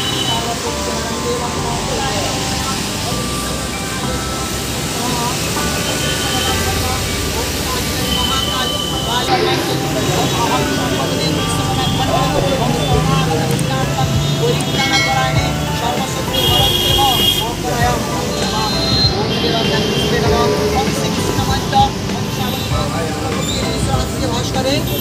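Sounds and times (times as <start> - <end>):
many overlapping voices: 0.0 - 25.0
steady traffic noise: 0.0 - 25.0.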